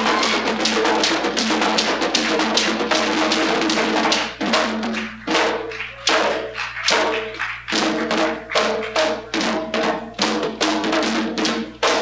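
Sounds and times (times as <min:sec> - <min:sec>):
hand drums playing dance rhythm: 0:00.0 - 0:12.0.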